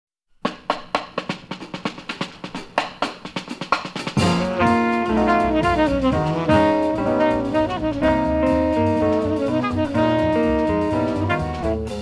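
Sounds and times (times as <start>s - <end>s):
snare drum solo: 0.4s - 12.0s
jazz band with horns: 1.2s - 12.0s.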